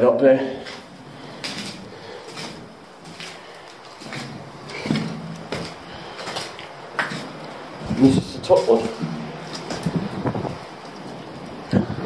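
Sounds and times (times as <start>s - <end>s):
footsteps in echoing concrete room: 0.0s - 11.4s
small knocks: 0.7s - 7.7s.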